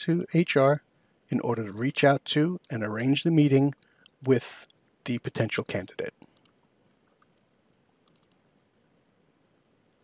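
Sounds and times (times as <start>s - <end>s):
computer mouse clicks: 6.2s - 8.4s.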